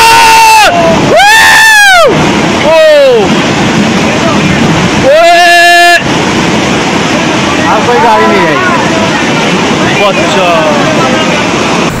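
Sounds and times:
people crying out: 0:00.0 - 0:03.3, 0:05.0 - 0:06.0
floodwater rushing through a street: 0:00.0 - 0:12.0.

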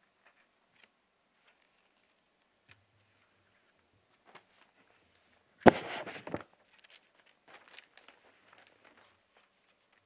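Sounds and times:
rustling: 0:03.0 - 0:10.0
sharp knock: 0:05.7 - 0:06.2.

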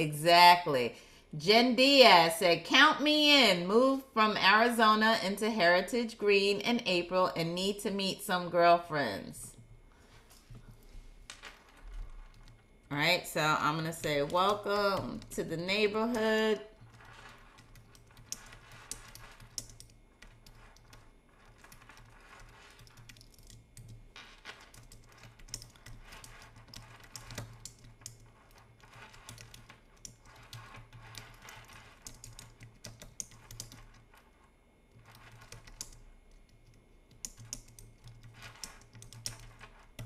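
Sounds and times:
low steady hum: 0:00.0 - 0:40.0.

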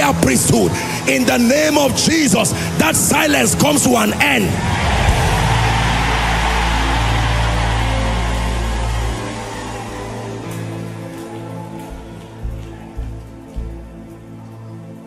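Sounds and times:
congregation shouting and cheering: 0:03.8 - 0:13.4.

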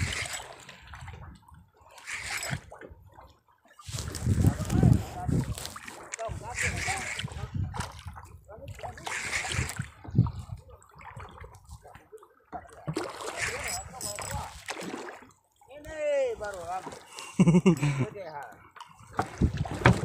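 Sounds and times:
water splashing against boat hull: 0:00.0 - 0:20.0
person speaking: 0:04.0 - 0:07.4, 0:13.4 - 0:14.6, 0:15.7 - 0:18.6.

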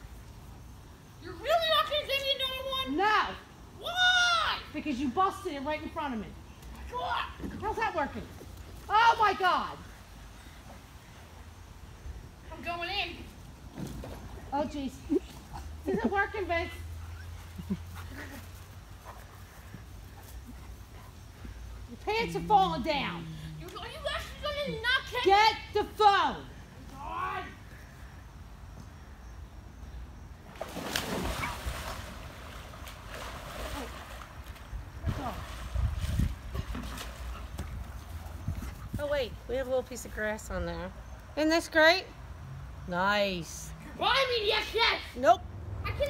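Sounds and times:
pool water splashing and sloshing: 0:00.0 - 0:21.5, 0:30.4 - 0:39.7
wind rumble on microphone: 0:34.6 - 0:39.5.

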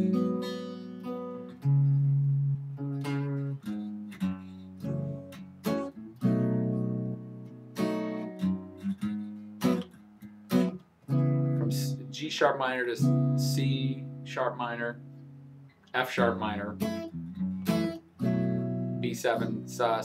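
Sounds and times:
electric guitar chords: 0:00.0 - 0:09.9, 0:10.5 - 0:12.3, 0:12.9 - 0:20.0.

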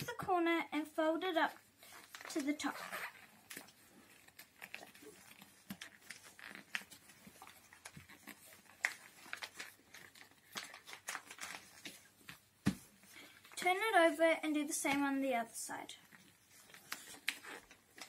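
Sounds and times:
paper being folded and creased: 0:01.6 - 0:13.6, 0:16.0 - 0:18.0.

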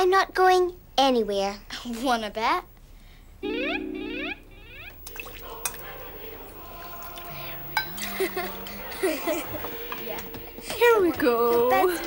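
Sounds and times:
soft background music: 0:03.4 - 0:12.0
party chatter: 0:05.5 - 0:12.0.

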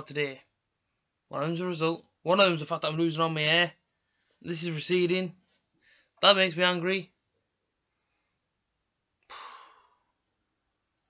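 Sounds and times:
man sighing: 0:09.3 - 0:10.0.

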